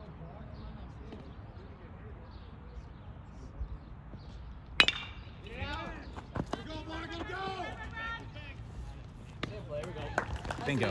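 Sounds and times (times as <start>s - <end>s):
people shouting encouragement: 6.6s - 8.7s.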